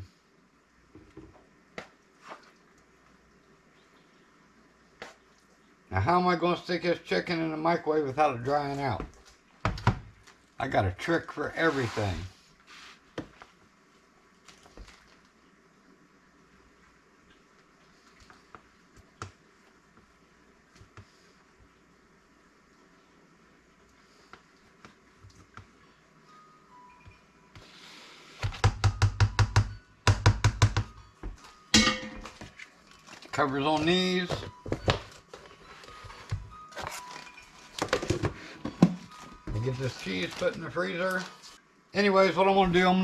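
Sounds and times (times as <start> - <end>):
rapid hollow knocks: 28.5 - 31.0.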